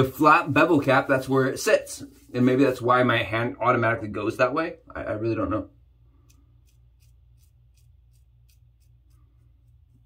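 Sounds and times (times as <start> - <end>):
razor scraping stubble: 6.0 - 10.0.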